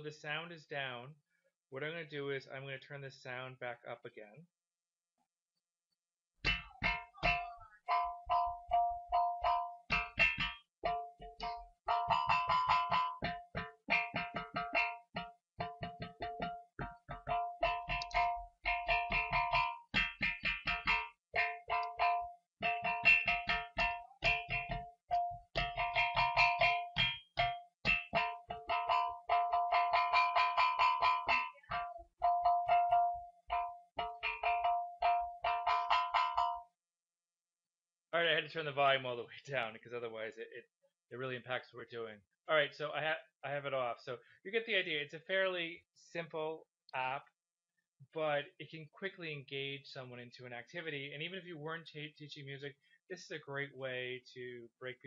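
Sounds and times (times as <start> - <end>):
synthesized metallic drum strikes: 6.4 - 36.7.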